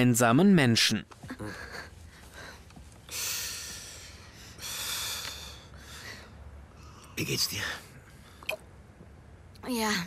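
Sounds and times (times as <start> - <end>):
breathy smoking breaths: 1.4 - 7.2.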